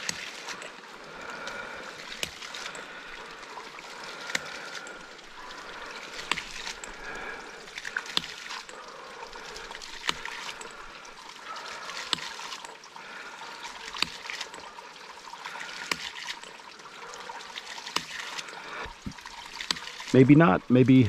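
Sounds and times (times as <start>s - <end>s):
water trickling and splashing: 0.0s - 21.0s.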